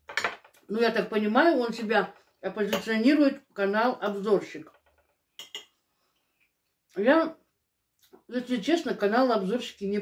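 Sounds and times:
metal fork tapping a plate: 0:05.4 - 0:05.7.

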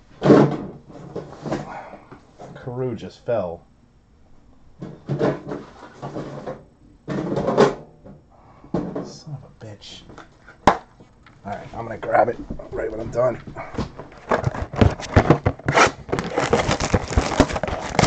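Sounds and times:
indistinct voices: 0:11.4 - 0:13.9.

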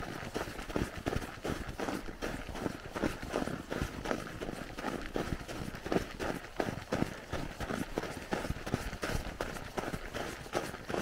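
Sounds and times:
footsteps crunching on snow: 0:00.0 - 0:11.0.

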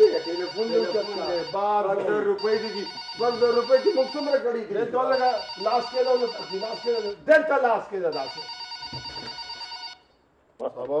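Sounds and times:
desk telephone ringing: 0:00.0 - 0:07.3, 0:08.1 - 0:10.1.

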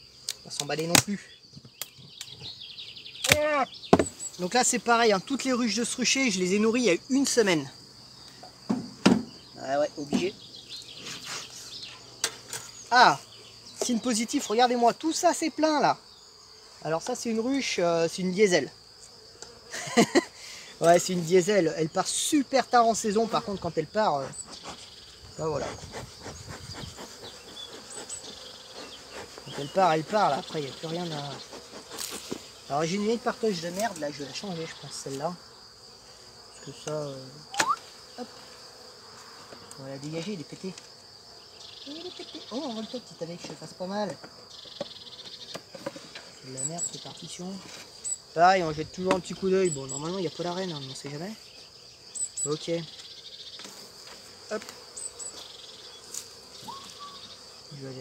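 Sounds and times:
bees buzzing: 0:00.0 - 0:58.0
insect chirring: 0:00.0 - 0:58.0
short high chirps: 0:37.5 - 0:37.8.

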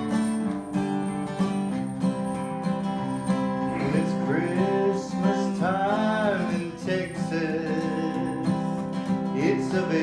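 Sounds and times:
acoustic guitar strumming: 0:00.0 - 0:10.0
man singing: 0:03.5 - 0:10.0.

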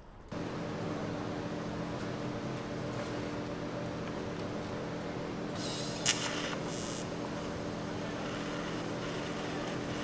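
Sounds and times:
welding arc humming and hissing: 0:03.6 - 0:10.0.

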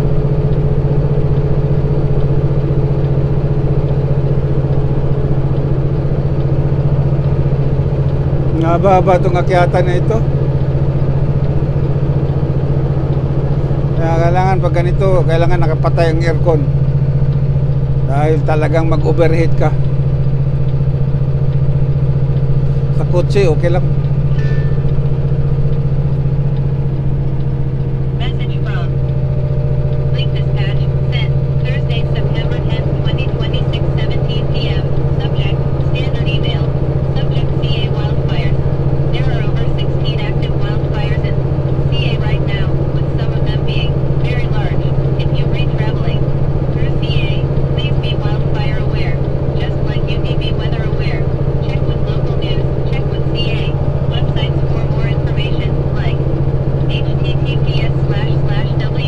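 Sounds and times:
diesel truck engine droning: 0:00.0 - 0:59.0.

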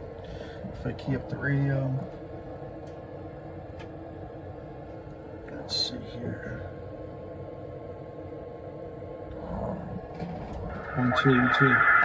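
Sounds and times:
radio hiss and hum: 0:09.4 - 0:12.0.

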